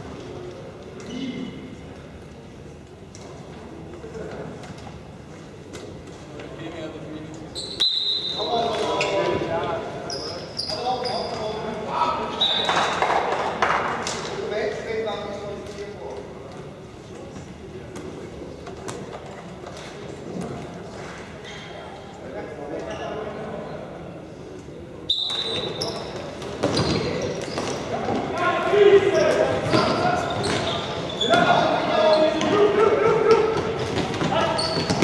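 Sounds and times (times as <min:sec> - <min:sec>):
players calling out in echoing hall: 0:00.0 - 0:35.0.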